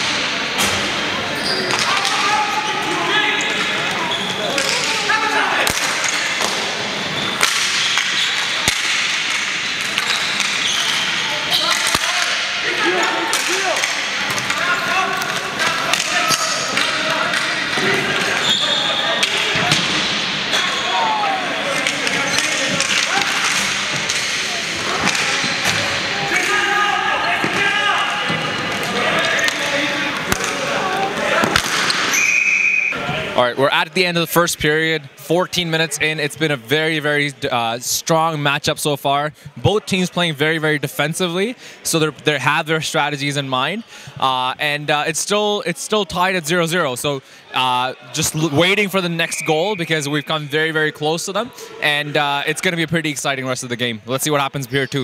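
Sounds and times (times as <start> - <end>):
players shouting: 0.0 - 34.6, 47.5 - 52.7
hockey sticks clacking: 0.6 - 20.8, 21.6 - 26.7, 27.3 - 33.0.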